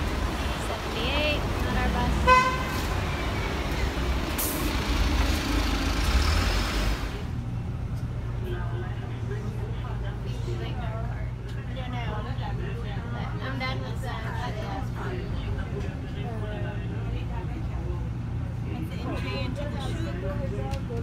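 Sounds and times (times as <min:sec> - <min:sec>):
bus engine hum from inside: 0:00.0 - 0:21.0
bus rumble: 0:00.0 - 0:21.0
street traffic: 0:00.0 - 0:21.0
vehicle horn toot: 0:02.2 - 0:02.9.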